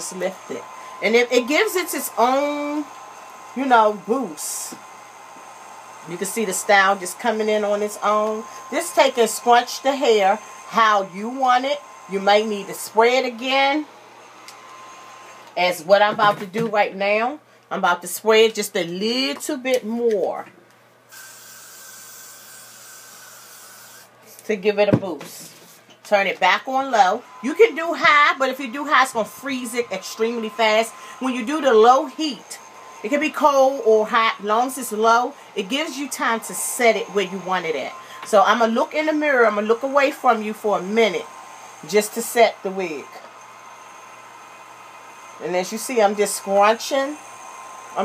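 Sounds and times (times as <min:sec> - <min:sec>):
aerosol spray hiss: 0:00.0 - 0:15.4, 0:21.1 - 0:24.1, 0:28.6 - 0:48.0
hair dryer blowing: 0:00.0 - 0:17.4, 0:21.1 - 0:48.0.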